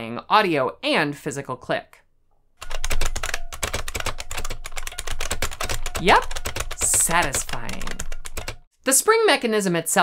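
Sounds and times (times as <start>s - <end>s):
fast typing on clicky keyboard: 2.6s - 8.7s.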